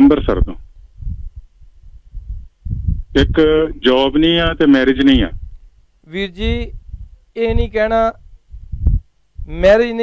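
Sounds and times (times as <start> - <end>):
low irregular thuds and rumble: 0.3 - 3.6, 4.2 - 5.6, 6.4 - 9.8.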